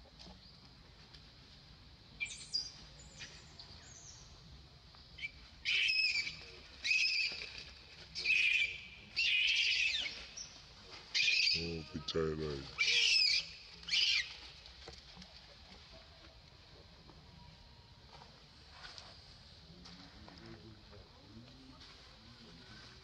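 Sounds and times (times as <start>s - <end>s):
baby monkey crying squeals: 11.2s - 11.6s, 12.8s - 14.3s.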